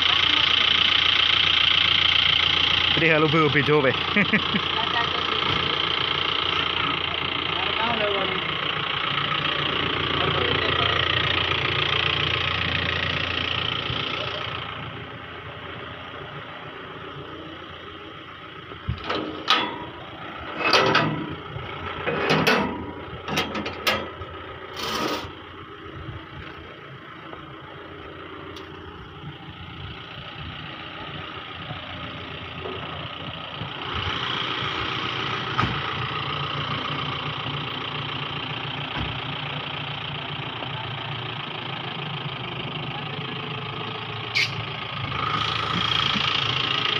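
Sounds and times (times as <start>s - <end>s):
car engine idling: 0.0s - 46.9s.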